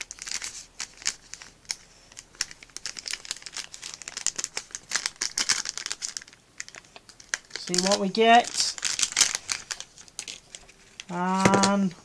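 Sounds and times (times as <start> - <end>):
packet crinkling and tearing: 0.0 - 11.9.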